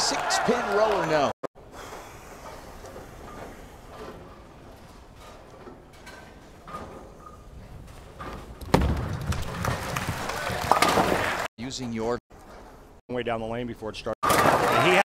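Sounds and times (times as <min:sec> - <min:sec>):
quiet bowling alley ambience: 0:01.6 - 0:10.5, 0:11.6 - 0:14.0
bowling ball rolling rumble: 0:07.9 - 0:11.4
bowling ball thud: 0:08.6 - 0:11.3.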